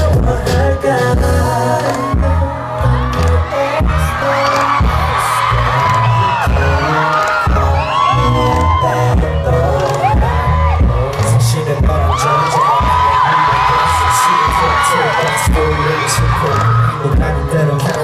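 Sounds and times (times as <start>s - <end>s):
male group singing: 0.0s - 18.0s
pounding bass beat: 0.0s - 18.0s
crowd cheering and screaming: 0.7s - 18.0s.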